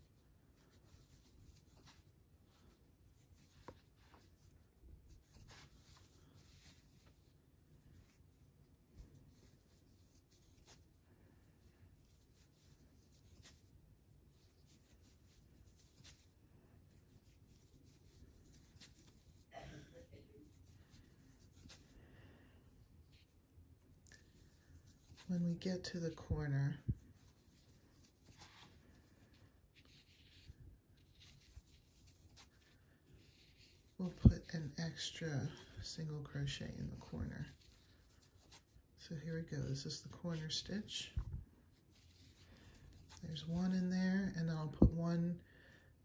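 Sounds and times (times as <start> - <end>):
rustling of yarn: 0.0 - 46.0.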